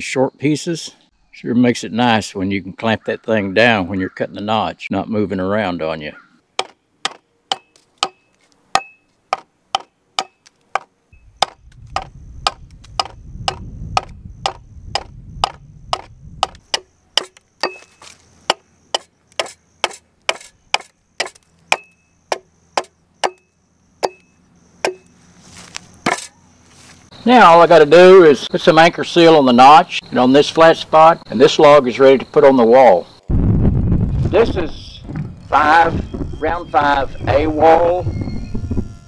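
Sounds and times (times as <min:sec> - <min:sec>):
axe chopping wood: 0:06.6 - 0:24.2, 0:24.8 - 0:25.1, 0:26.0 - 0:26.4.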